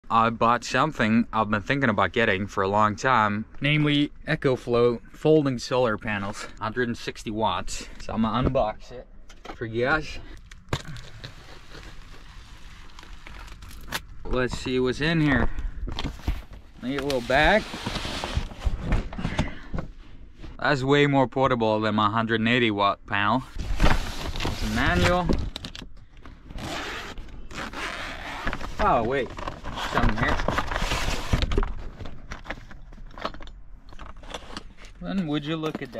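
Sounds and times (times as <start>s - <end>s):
cardboard tearing and crackling: 10.7s - 14.1s, 27.0s - 31.6s
zipper scraping along fabric: 26.5s - 30.0s.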